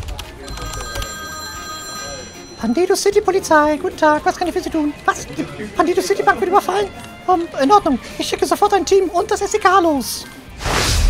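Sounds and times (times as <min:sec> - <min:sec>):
telephone ringing: 0:00.4 - 0:05.2.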